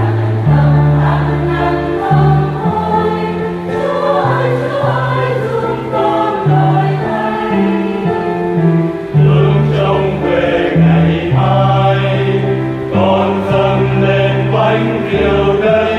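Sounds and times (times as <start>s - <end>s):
choir singing a hymn: 0.0s - 15.9s.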